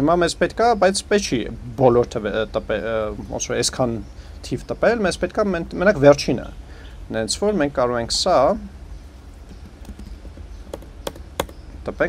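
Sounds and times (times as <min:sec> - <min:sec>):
low background hum: 0:00.0 - 0:12.0
laptop keys clicking: 0:09.5 - 0:11.6.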